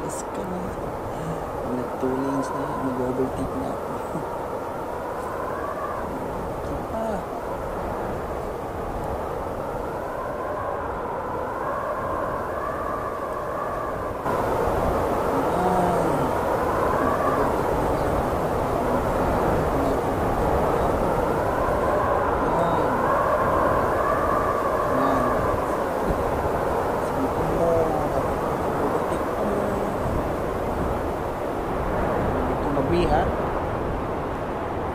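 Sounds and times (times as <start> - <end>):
low tyre rumble: 0.0 - 34.9
wind howling: 0.0 - 34.9.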